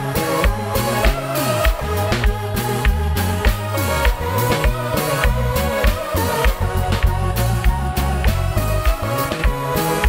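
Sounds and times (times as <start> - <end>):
live band playing: 0.0 - 10.0
sliding bass line: 0.0 - 10.0.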